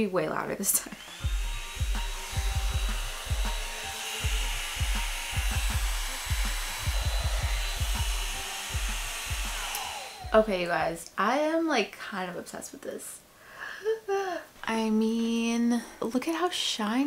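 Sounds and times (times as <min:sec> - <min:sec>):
hair dryer brush blowing air: 0:00.8 - 0:10.8.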